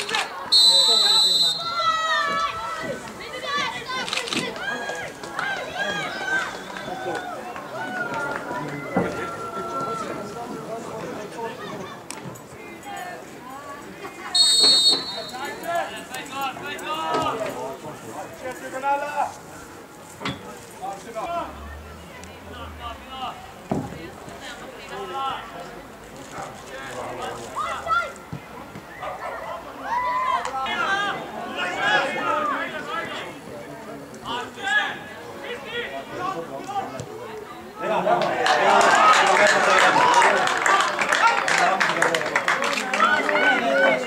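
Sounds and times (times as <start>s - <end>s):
outdoor background noise: 0.0s - 44.0s
people shouting: 0.8s - 10.2s.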